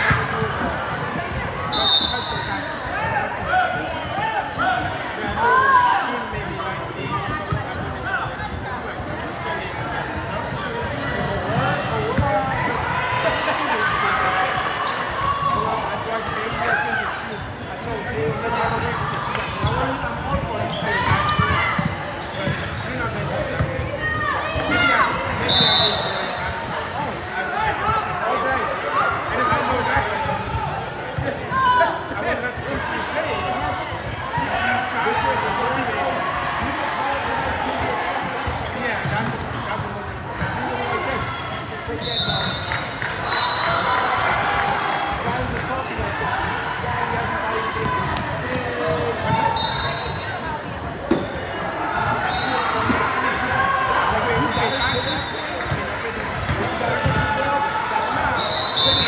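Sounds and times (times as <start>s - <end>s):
sneaker squeaks: 0.0s - 8.6s, 9.3s - 12.4s, 14.6s - 31.8s, 35.2s - 43.9s, 45.5s - 59.0s
basketball bouncing on court: 19.6s - 23.9s, 55.6s - 57.5s.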